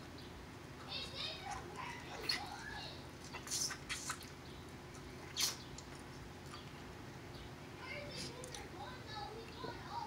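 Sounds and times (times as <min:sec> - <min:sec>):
low steady hum: 0:00.0 - 0:10.0
man eating crab: 0:03.2 - 0:06.9.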